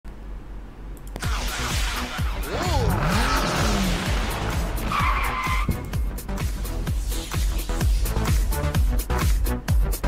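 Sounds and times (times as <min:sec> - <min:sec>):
electronic music with beat: 0:01.2 - 0:10.0.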